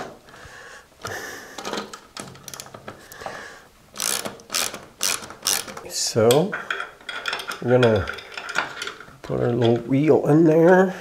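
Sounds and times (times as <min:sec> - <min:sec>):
ratchet wrench clicking: 0:04.0 - 0:05.8.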